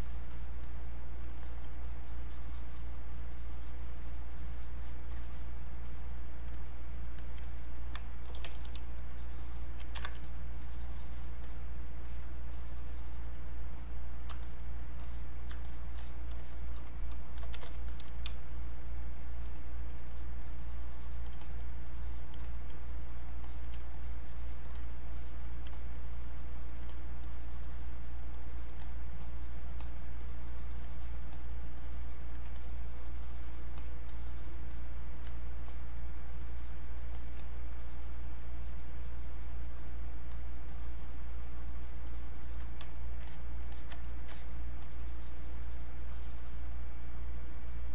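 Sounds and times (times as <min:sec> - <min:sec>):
stylus scratching on a tablet: 0:00.0 - 0:18.4, 0:19.4 - 0:46.8
low electrical hum: 0:00.0 - 0:47.9.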